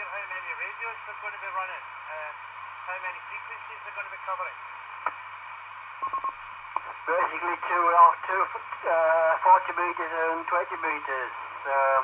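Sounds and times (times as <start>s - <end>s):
radio speaker hissing: 0.0s - 12.0s
buzzy beeps: 6.0s - 6.4s.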